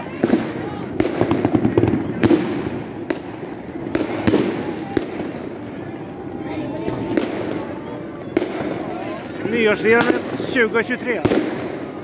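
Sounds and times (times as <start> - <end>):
firework bangs: 0.0 - 12.0
fireworks crackling and rumbling: 0.0 - 12.0.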